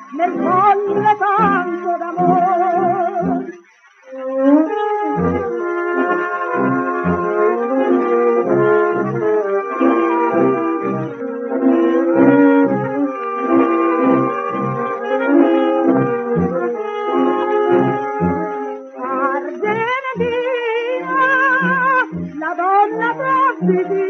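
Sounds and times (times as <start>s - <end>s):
wavering vibrato melody: 0.0s - 24.0s
brass dance band playing: 4.7s - 18.8s.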